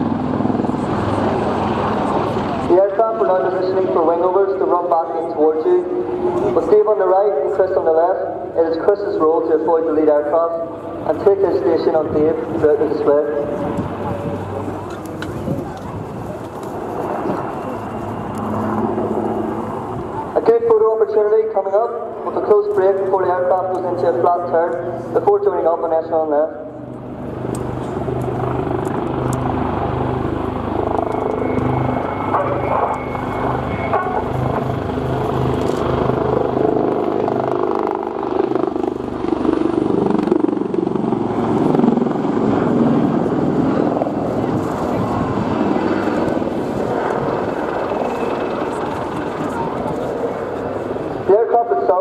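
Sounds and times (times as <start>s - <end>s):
helicopter rotor and engine noise: 0.0s - 52.0s.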